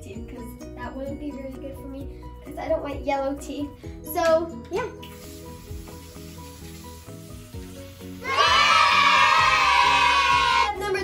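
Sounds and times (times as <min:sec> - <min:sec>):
soft background music: 0:00.0 - 0:11.0
water running in sink: 0:04.3 - 0:10.4.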